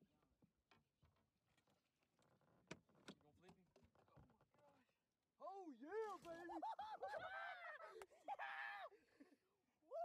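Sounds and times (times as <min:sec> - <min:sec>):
men shouting and whooping: 0:06.8 - 0:09.0.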